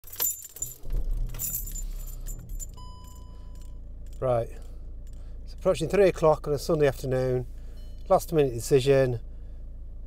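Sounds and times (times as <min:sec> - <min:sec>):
car keys jangling: 0:00.0 - 0:04.4
low diesel engine hum: 0:00.0 - 0:10.0.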